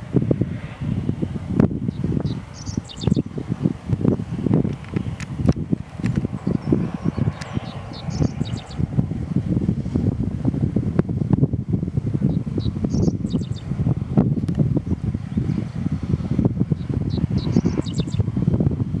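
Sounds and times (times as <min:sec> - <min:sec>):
wind buffeting microphone: 0:00.0 - 0:19.0
bird singing: 0:01.8 - 0:03.3, 0:06.2 - 0:08.8, 0:12.3 - 0:13.7, 0:16.8 - 0:18.2.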